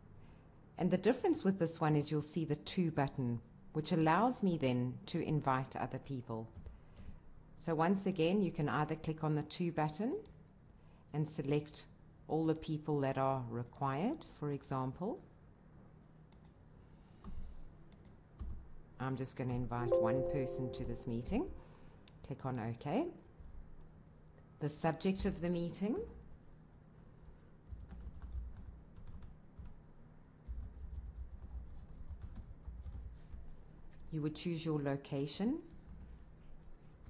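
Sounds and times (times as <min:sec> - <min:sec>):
computer keyboard typing: 0:17.9 - 0:18.6, 0:27.2 - 0:29.8, 0:30.4 - 0:33.2.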